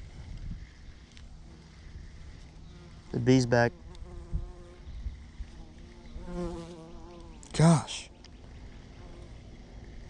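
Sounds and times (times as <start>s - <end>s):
bee buzzing: 1.4s - 7.6s.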